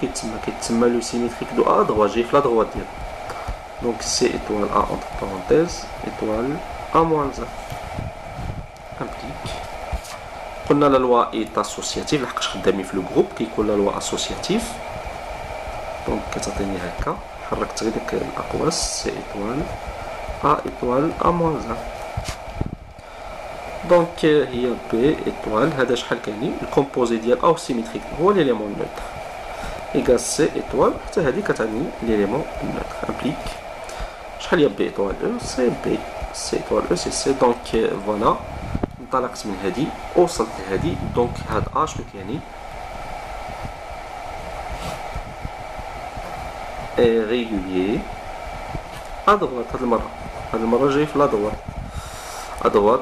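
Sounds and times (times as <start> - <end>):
faint high whine: 0.0 - 53.0
fan-like whir: 0.0 - 53.0.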